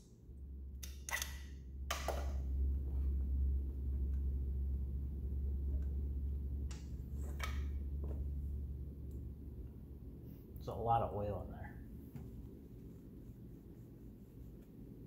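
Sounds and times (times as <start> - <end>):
steady low hum: 0.0 - 15.0
hose fitting clicks and scrapes: 0.8 - 2.3.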